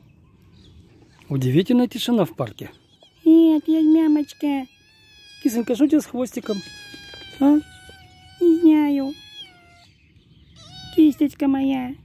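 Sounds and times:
cat meowing: 2.8 - 11.4.

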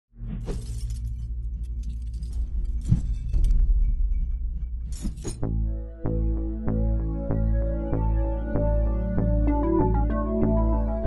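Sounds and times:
deep synth drone: 5.5 - 11.0.

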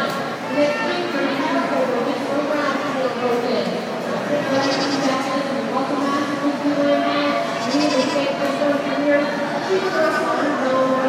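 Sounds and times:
crowd chatter: 0.0 - 11.0
goats bleating: 7.4 - 8.3.

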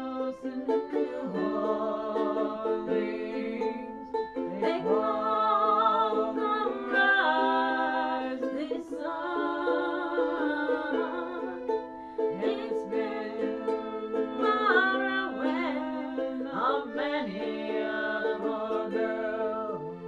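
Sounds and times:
ukulele playing: 0.0 - 20.0
women singing: 0.0 - 20.0.

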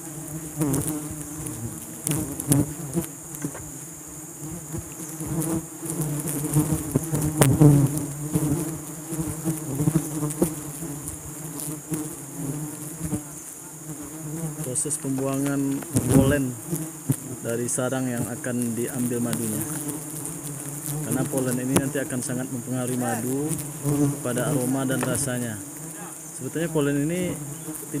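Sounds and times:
bees buzzing in a swarm: 0.0 - 28.0
honeycomb knocks and scrapes: 24.8 - 25.4.

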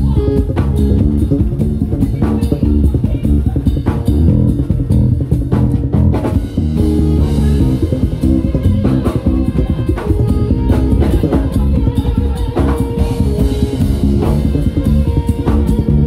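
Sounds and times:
drum kit groove: 0.0 - 16.0
electric bass playing: 0.0 - 16.0.

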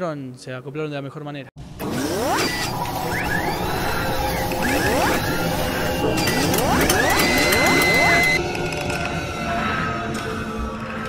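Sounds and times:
mechanical clicking and whirring: 1.8 - 9.2
steady high tone: 2.2 - 8.6.

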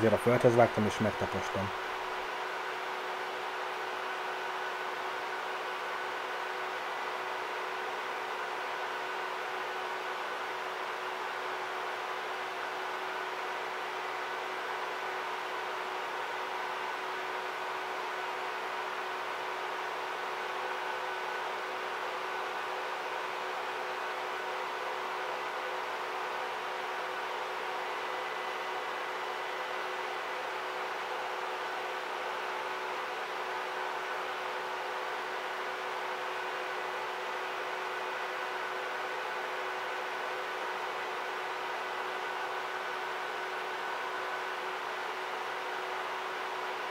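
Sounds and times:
projector cooling fans humming: 0.0 - 46.9.

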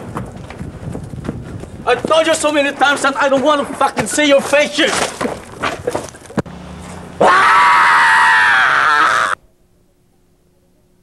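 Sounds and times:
faint steady hum: 5.4 - 11.0
man screaming: 7.2 - 9.4.

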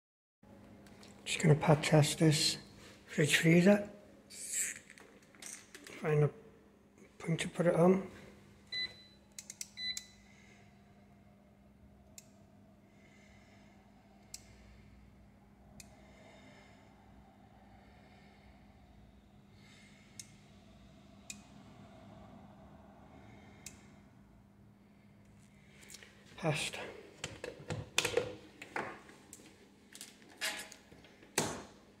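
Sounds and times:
faint steady hum: 0.5 - 32.0.

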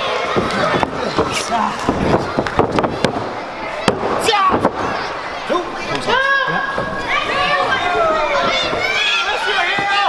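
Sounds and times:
crowd voices and shouts: 0.0 - 10.0.

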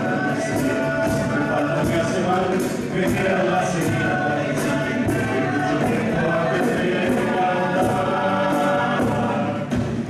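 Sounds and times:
chorus singing into microphones: 0.0 - 10.0
regular beat: 0.0 - 10.0.

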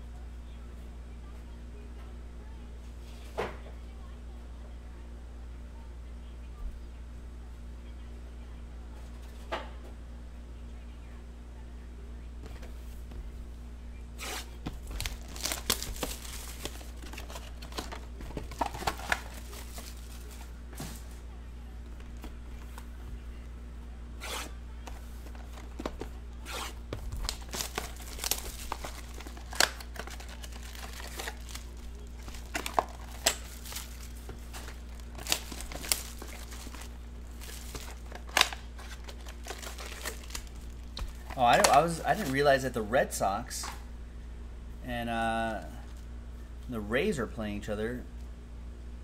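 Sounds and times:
steady low hum: 0.0 - 49.0
plastic wrap crinkling and tearing: 14.2 - 20.5, 25.3 - 42.4.

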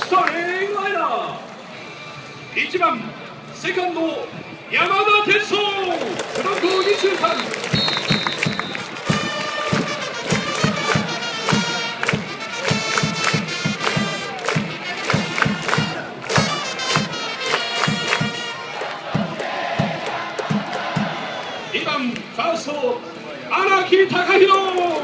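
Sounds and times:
brass melody: 6.5 - 19.3
drum beating steadily: 7.7 - 21.3
stadium crowd singing and chanting: 14.3 - 21.8.

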